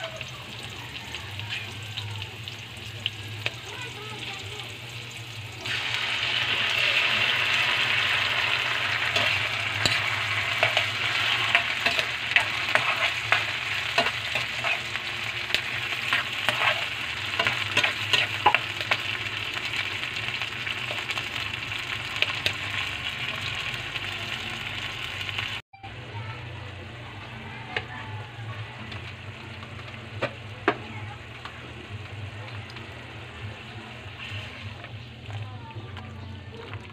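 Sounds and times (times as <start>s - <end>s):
fish sizzling in a wok: 0.0s - 25.6s, 27.1s - 35.4s
metal spatula scraping and tapping: 9.2s - 14.8s, 15.5s - 19.0s.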